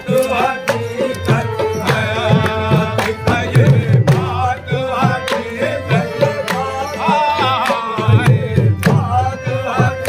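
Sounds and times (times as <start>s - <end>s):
hand claps: 0.0s - 3.4s
harmonium: 0.0s - 10.0s
tabla strokes: 0.0s - 10.0s.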